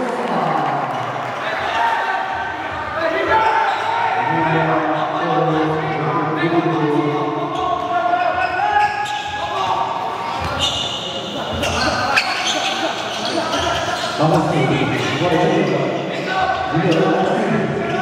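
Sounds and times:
basketball bouncing in hall: 0.0s - 4.0s, 6.5s - 18.0s
players shouting: 0.9s - 18.0s.

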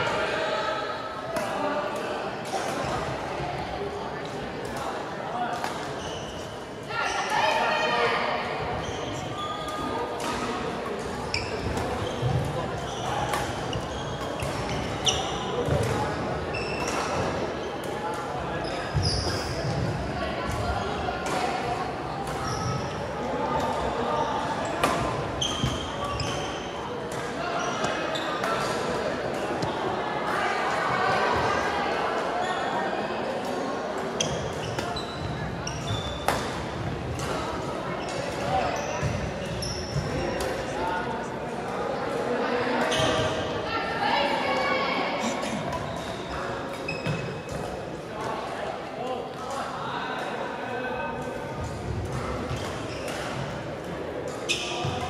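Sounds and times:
murmur of voices: 0.0s - 55.0s
sneakers squeaking on gym floor: 5.9s - 7.3s, 8.6s - 10.1s, 11.1s - 17.8s, 18.5s - 19.9s, 22.3s - 23.0s, 23.8s - 28.8s, 34.2s - 36.6s, 37.2s - 40.5s, 42.8s - 43.5s, 45.2s - 47.7s, 52.1s - 53.5s, 54.4s - 55.0s.

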